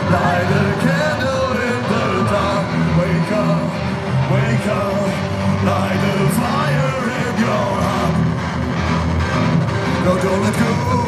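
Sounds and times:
person singing: 0.0s - 8.4s, 9.9s - 11.0s
drums: 0.0s - 11.0s
electric guitar: 0.0s - 11.0s
live rock band playing: 0.0s - 11.0s.

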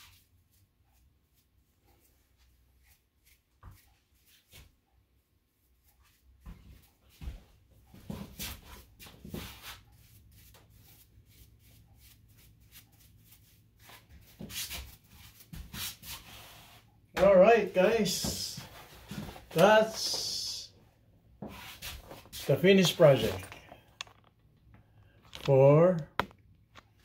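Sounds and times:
brushing and rustling strokes: 8.2s - 17.0s, 21.4s - 23.5s.

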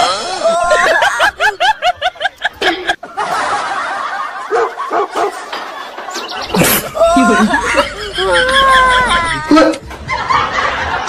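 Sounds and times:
rapid high laughter: 0.0s - 11.0s.

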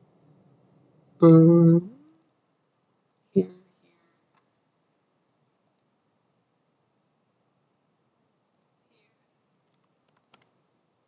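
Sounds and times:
computer mouse clicks: 5.6s - 5.9s, 8.5s - 8.8s, 9.6s - 10.6s.

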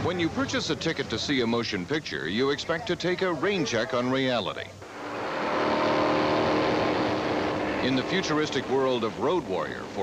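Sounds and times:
rushing noise: 4.8s - 10.0s
vehicle engines running hard: 4.8s - 10.0s.

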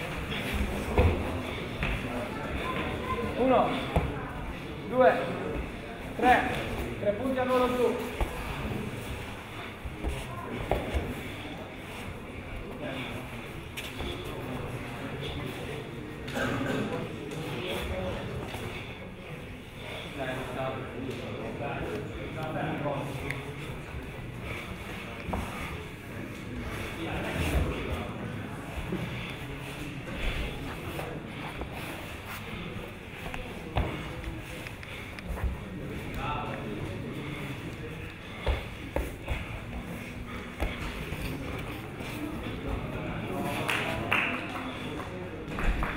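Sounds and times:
indistinct background voices: 0.0s - 45.9s
wrestlers scuffling on foam mats: 5.5s - 12.3s.

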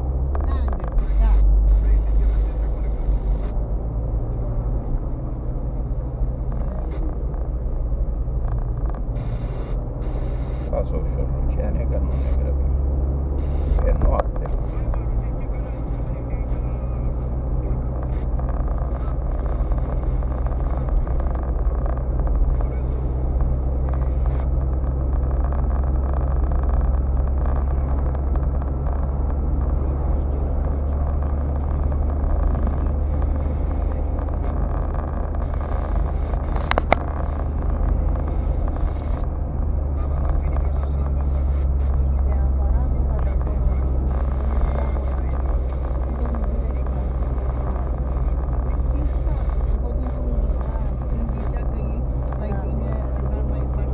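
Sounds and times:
car engine and road noise: 0.0s - 53.9s.

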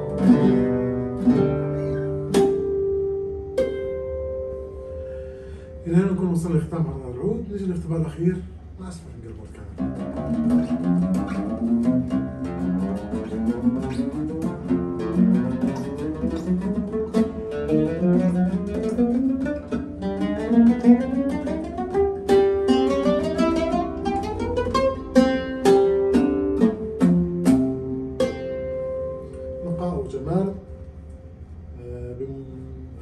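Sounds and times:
oud played with plectrum: 0.0s - 33.0s.

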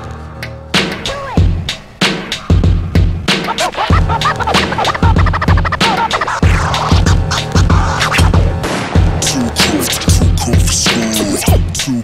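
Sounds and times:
bass-heavy hip-hop beat: 0.0s - 12.0s
turntable scratching: 0.8s - 12.0s.

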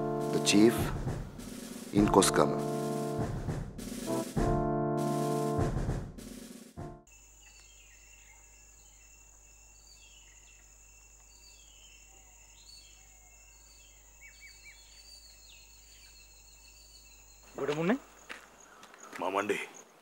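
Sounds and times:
birds chirping: 0.0s - 3.3s, 7.2s - 20.0s
music sting: 1.9s - 7.0s.

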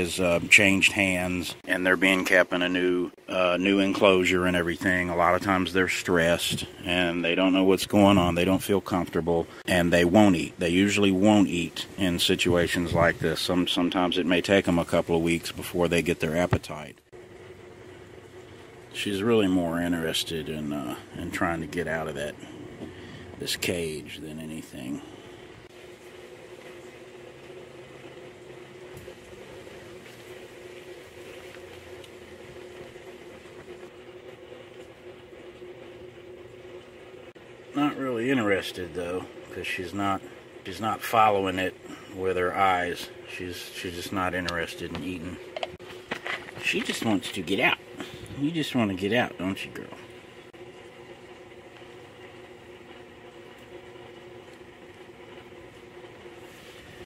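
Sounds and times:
faint constant tone: 0.0s - 57.0s
steady mechanical hum: 0.0s - 57.0s.

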